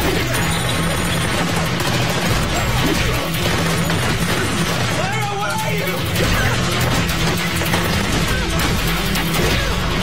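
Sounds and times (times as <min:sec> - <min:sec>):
action music with pulsing beat: 0:00.0 - 0:10.0.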